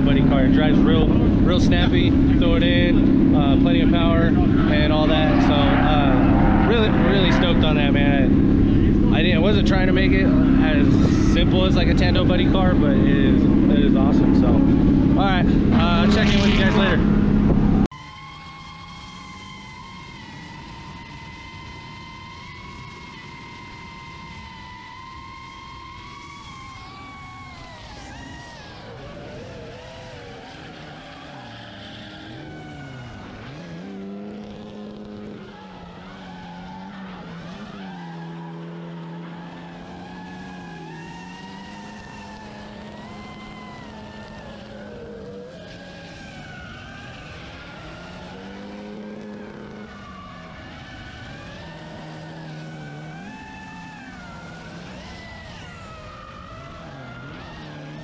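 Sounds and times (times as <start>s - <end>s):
steady high whine: 0.0s - 17.9s
tyres skidding: 0.0s - 22.0s, 26.0s - 58.0s
car engines revving: 0.0s - 58.0s.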